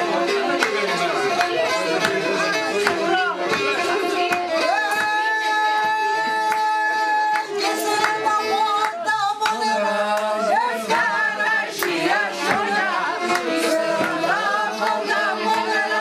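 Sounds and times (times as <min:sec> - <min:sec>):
people clapping in time: 0:00.0 - 0:16.0
people singing: 0:00.0 - 0:16.0.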